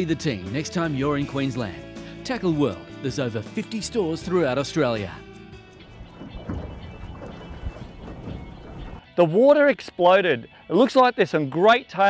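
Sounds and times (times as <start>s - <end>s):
faint background music: 0.0s - 12.0s
choppy water slapping on boat: 5.8s - 9.0s
wind rumbling on microphone: 5.8s - 9.0s.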